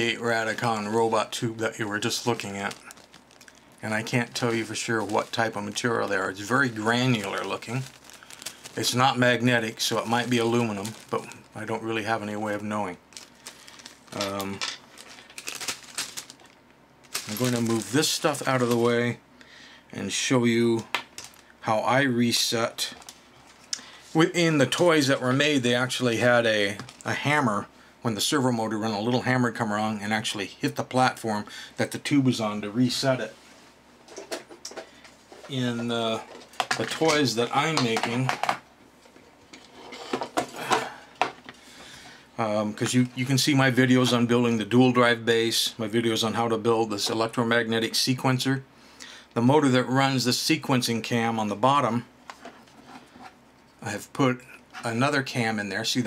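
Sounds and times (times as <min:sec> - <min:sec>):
plastic bag crinkling: 0:00.3 - 0:19.2, 0:20.9 - 0:21.5
plastic objects clattering on wooden desk: 0:36.3 - 0:37.0, 0:37.8 - 0:41.6.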